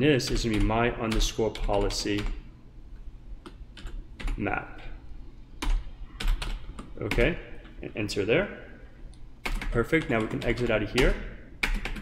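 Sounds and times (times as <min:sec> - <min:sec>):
computer keyboard keystrokes: 0:03.4 - 0:04.4, 0:05.6 - 0:07.3, 0:09.4 - 0:12.0.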